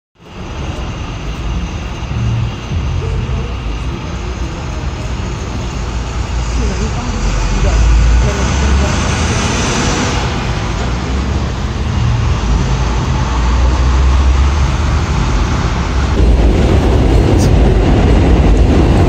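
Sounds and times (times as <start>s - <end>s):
bus approaching: 0.2s - 19.0s
engine rumble: 0.2s - 19.0s.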